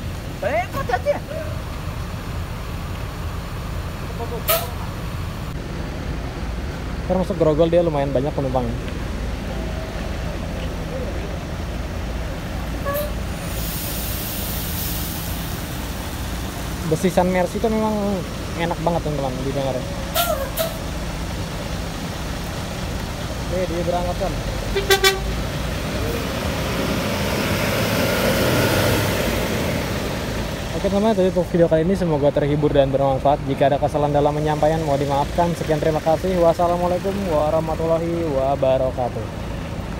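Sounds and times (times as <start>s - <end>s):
coach engine rumbling: 0.0s - 39.9s
air hiss: 12.8s - 16.4s.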